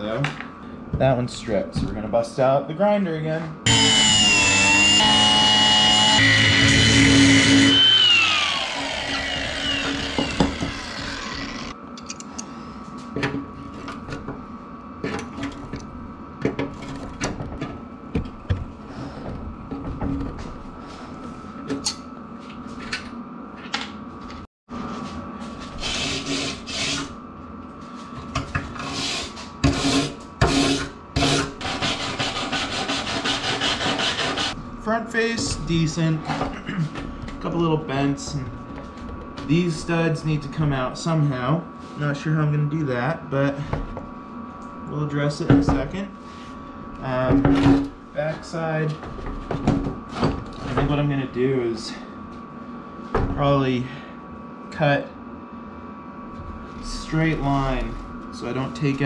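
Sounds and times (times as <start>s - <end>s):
angle grinder whining: 3.7s - 11.8s.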